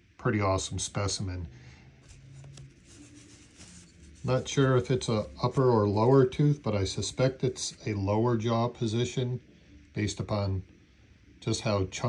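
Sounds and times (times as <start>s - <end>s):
fingers rubbing and rustling: 2.0s - 6.4s.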